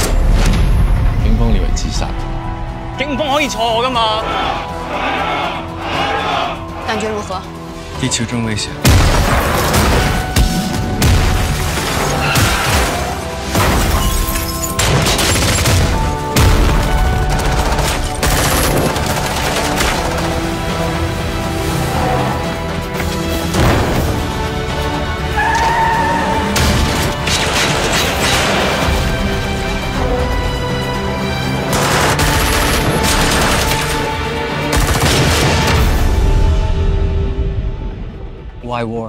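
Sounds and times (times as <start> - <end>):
dramatic trailer music: 0.0 - 39.0
rapid gunfire: 17.2 - 20.6, 31.7 - 35.9.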